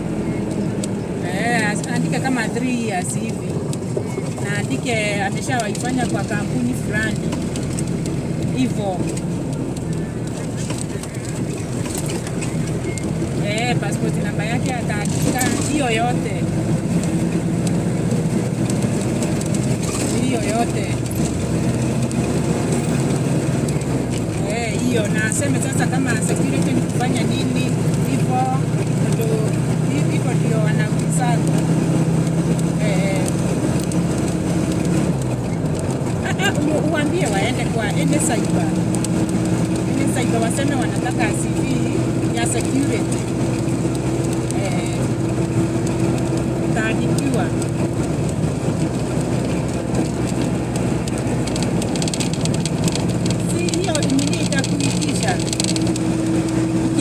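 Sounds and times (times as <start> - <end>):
indistinct voices talking: 0.0 - 16.8, 17.4 - 34.3, 34.9 - 57.0
vehicle engine and tyres droning: 0.0 - 57.0.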